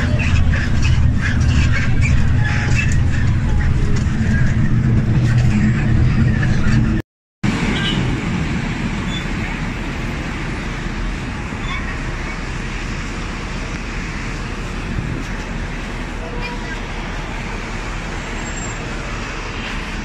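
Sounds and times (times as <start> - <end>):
rattling in bus cabin: 0.0 - 7.0
bus engine drone: 0.0 - 20.0
street traffic hiss: 7.5 - 20.0.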